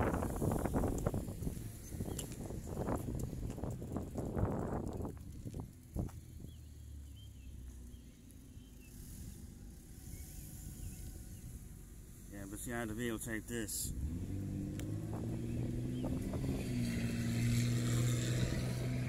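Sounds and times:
wind and handling rustle: 0:00.0 - 0:12.3
faint bird chirps: 0:06.4 - 0:11.6.

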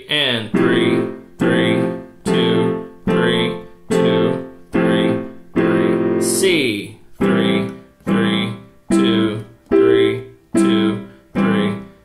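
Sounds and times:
piano block chords: 0:00.5 - 0:12.0.

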